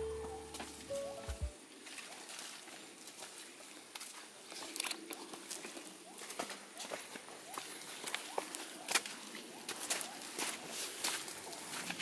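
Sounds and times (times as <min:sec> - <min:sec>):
background music: 0:00.0 - 0:01.6
short tone: 0:00.0 - 0:01.6
footsteps on leaf litter: 0:00.0 - 0:12.0
forest ambience: 0:00.0 - 0:12.0.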